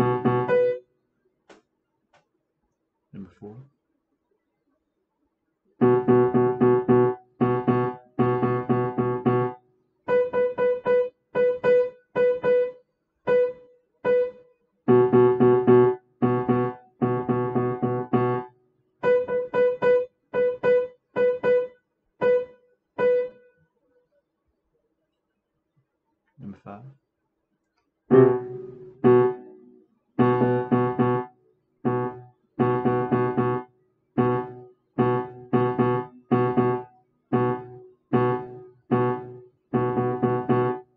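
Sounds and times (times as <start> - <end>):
piano low chords: 0.0 - 0.8, 5.8 - 9.6, 14.9 - 18.5, 28.1 - 40.9
piano single high note: 28.1 - 29.6.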